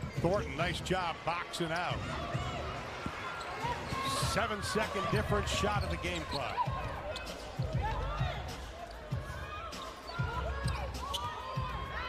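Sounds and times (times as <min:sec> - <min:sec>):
sneakers squeaking: 0:01.7 - 0:12.0.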